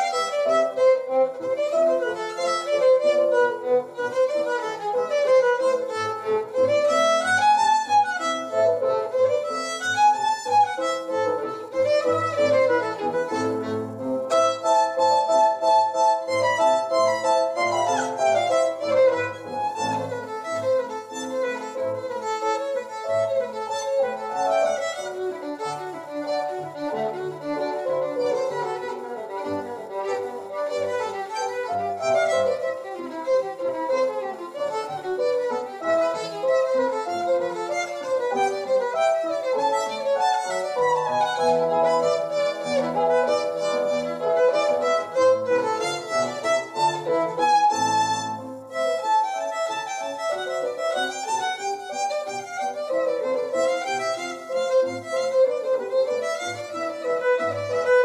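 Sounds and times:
solo violin melody: 0.0s - 58.0s.

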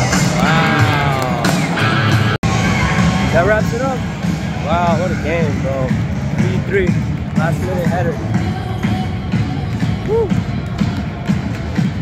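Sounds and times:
song with pulsing beat and vocals: 5.5s - 12.0s.

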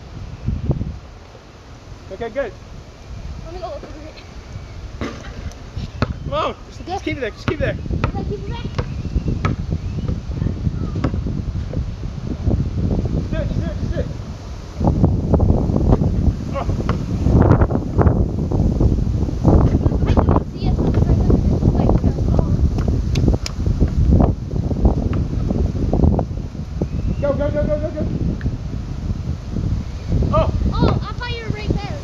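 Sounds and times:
wind rumbling on microphone: 0.0s - 32.0s
basketball bouncing on pavement: 6.0s - 6.2s, 7.4s - 10.2s, 10.9s - 11.8s, 16.8s - 17.1s, 21.8s - 22.2s, 30.8s - 31.2s.

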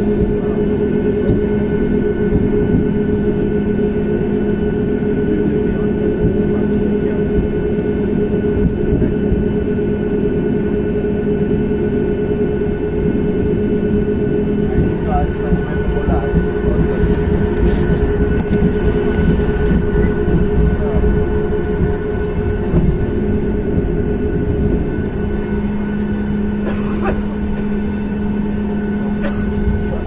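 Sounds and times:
jet engines humming: 0.0s - 30.0s
low cabin rumble: 0.0s - 30.0s.

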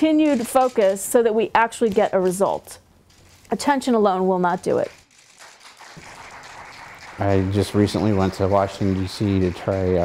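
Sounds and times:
small group applauding: 5.2s - 10.0s.

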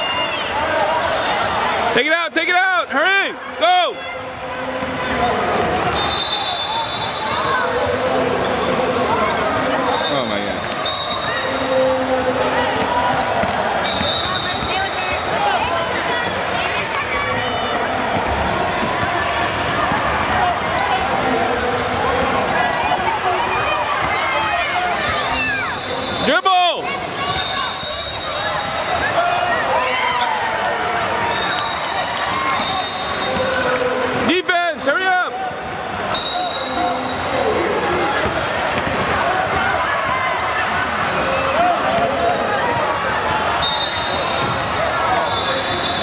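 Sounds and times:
basketball dribbling: 12.2s - 14.8s.

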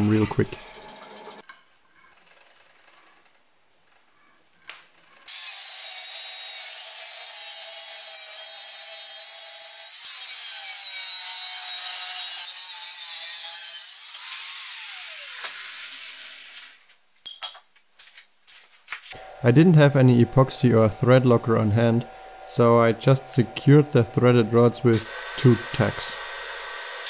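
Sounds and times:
angle grinder cutting steel: 5.3s - 16.8s, 21.8s - 27.0s.

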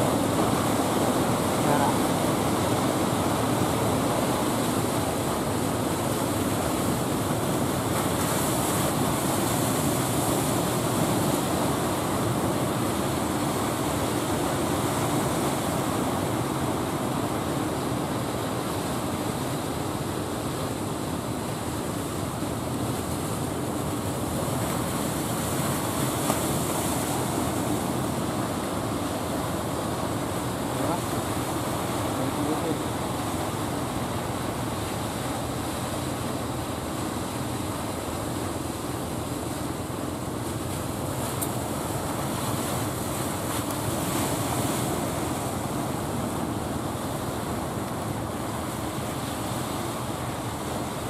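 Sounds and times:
surf: 0.0s - 51.0s
wind: 0.0s - 51.0s.

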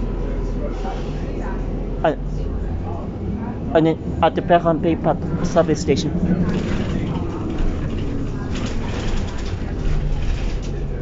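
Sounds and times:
bus engine and road rumble: 0.0s - 11.0s
faint passenger voices: 0.0s - 11.0s.

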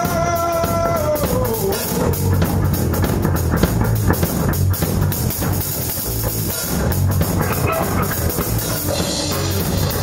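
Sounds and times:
drum kit: 0.0s - 10.0s
electric guitars: 0.0s - 10.0s.

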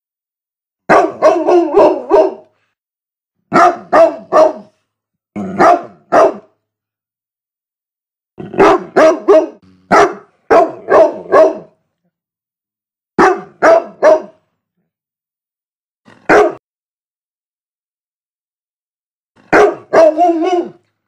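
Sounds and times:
large dog barking: 0.9s - 2.6s, 3.5s - 4.8s, 5.4s - 6.6s, 8.4s - 11.8s, 13.2s - 14.5s, 16.2s - 16.6s, 19.4s - 20.9s.

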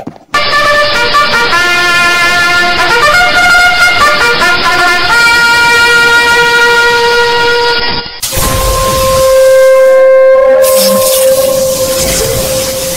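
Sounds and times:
loud horn-like held tones: 0.4s - 12.9s.

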